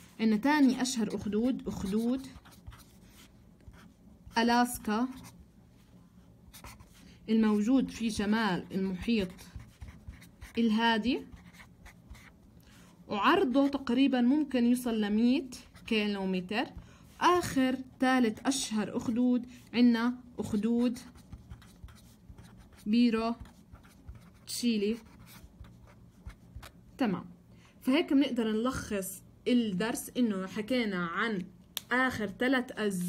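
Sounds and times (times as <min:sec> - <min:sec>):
marker scratching on paper: 0:00.0 - 0:05.4, 0:06.5 - 0:12.4, 0:20.4 - 0:26.8.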